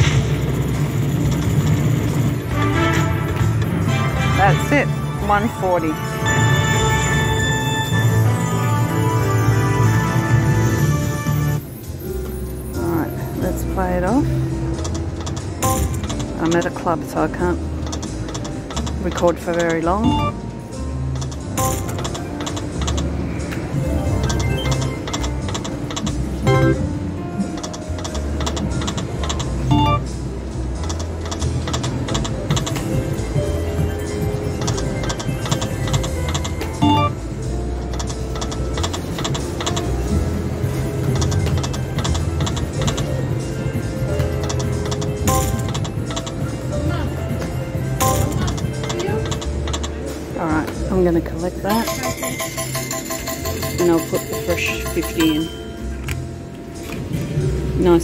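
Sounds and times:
electronic game music: 0.0 - 13.1, 17.5 - 50.2, 51.7 - 56.4.

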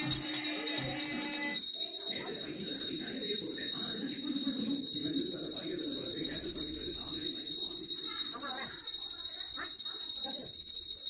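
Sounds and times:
murmur of voices: 0.0 - 10.6
hand bell ringing rapidly: 0.0 - 11.0.

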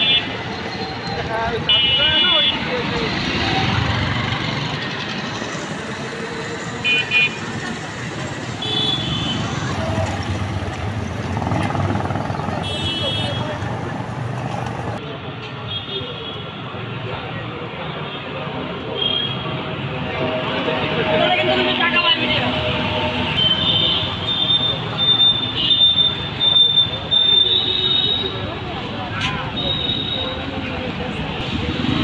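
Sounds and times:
street traffic: 0.0 - 32.0.

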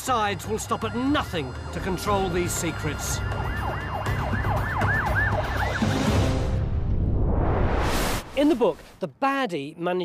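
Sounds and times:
siren yelping: 1.8 - 6.3.

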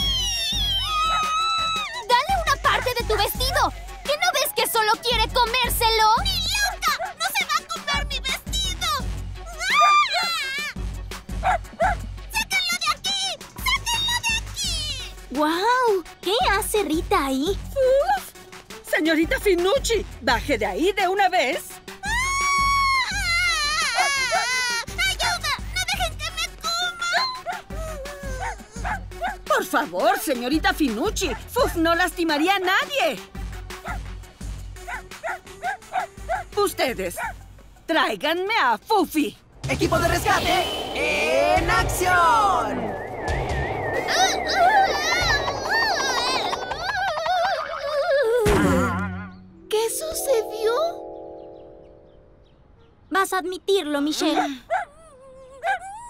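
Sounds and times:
cartoon dog yapping: 0.0 - 1.9, 9.6 - 10.7, 23.8 - 25.7
cartoon girl wailing: 0.0 - 2.0
background music: 0.0 - 54.9
small dog yapping: 0.8 - 1.8, 54.2 - 54.9.

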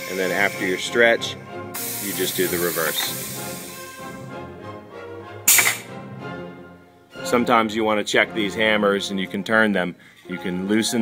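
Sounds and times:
compressed air hiss: 0.0 - 1.0, 1.7 - 4.2, 5.5 - 5.9
background music: 0.0 - 11.0.

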